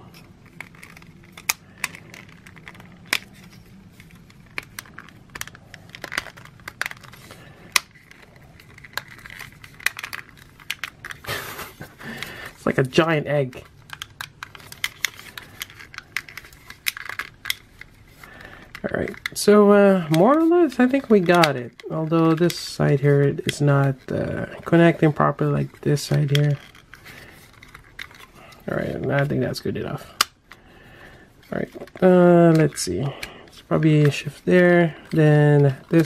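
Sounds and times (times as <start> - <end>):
plastic toy hinges clicking: 0.2 - 11.2, 13.6 - 19.4.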